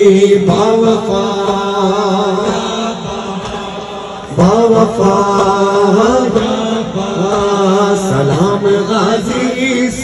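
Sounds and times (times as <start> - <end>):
lead voice through a microphone: 0.0 - 10.0
men chanting a lament: 0.0 - 10.0.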